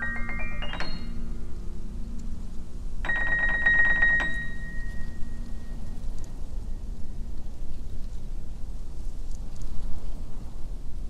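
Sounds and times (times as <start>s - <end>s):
bell-like tone ringing: 0.0s - 2.1s, 3.0s - 6.2s
steady low rumble: 0.0s - 3.4s, 4.0s - 11.0s.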